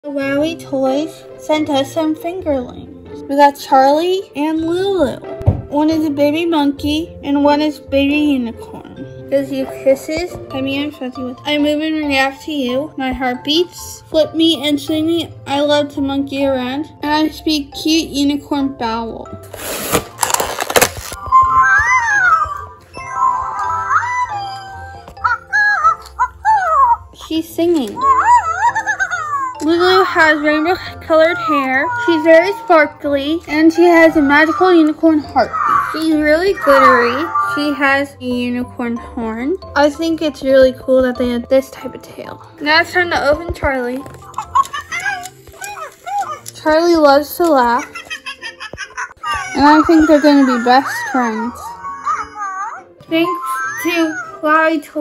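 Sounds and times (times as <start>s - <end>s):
background music: 0.0s - 55.0s
rustling of toy handled: 19.5s - 21.4s.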